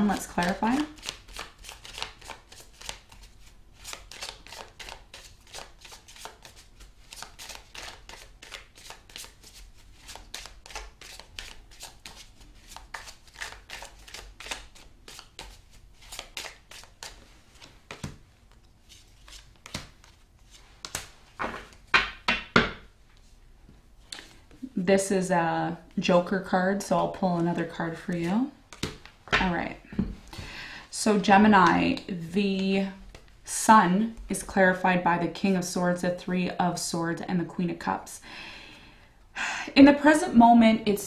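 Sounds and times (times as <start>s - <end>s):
cards being shuffled: 0.0s - 22.5s, 27.5s - 29.4s.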